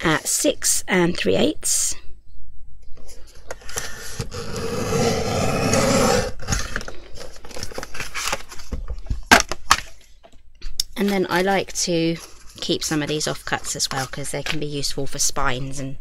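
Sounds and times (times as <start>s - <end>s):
paper trimmer blade scraping: 3.7s - 6.8s.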